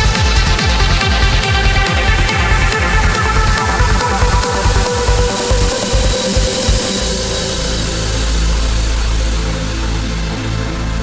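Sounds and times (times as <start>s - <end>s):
kick drum: 0.0s - 7.2s
low bass note: 0.0s - 9.5s
synth pads: 0.0s - 11.0s.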